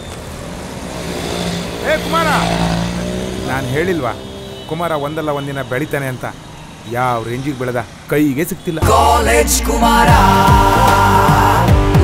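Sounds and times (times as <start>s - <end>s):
street noise: 0.0s - 12.0s.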